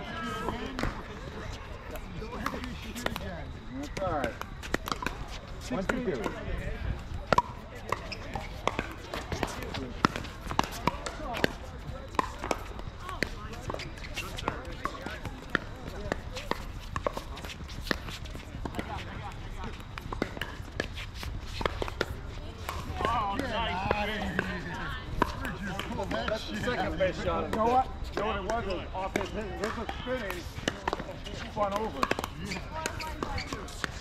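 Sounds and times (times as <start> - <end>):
people talking: 0.0 - 21.0, 21.8 - 34.0
ball bouncing on hard court: 3.9 - 6.4, 7.2 - 19.0, 27.4 - 34.0
paddles hitting plastic ball: 28.2 - 34.0.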